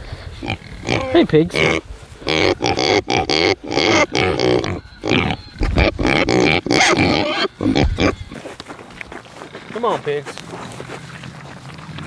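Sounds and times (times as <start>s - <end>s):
young pigs grunting: 0.3s - 8.4s.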